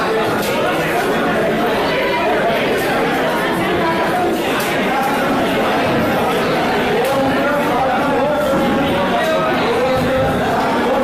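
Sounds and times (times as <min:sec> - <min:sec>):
babble of overlapping voices: 0:00.0 - 0:11.0.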